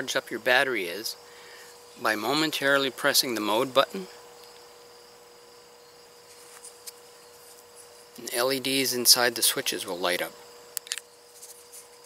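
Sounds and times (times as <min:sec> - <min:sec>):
crickets chirring: 0:00.0 - 0:12.0
faint steady hum: 0:00.0 - 0:12.0.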